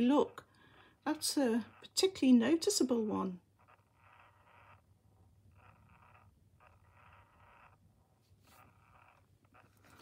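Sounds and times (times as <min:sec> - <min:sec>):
toy mechanism whirring: 0:00.0 - 0:10.0.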